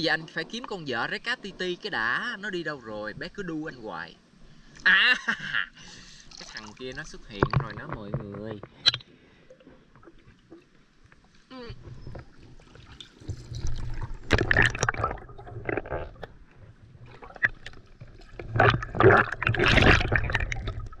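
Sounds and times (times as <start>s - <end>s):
water sloshing and splashing: 6.2s - 21.0s
low underwater rumble: 11.7s - 21.0s.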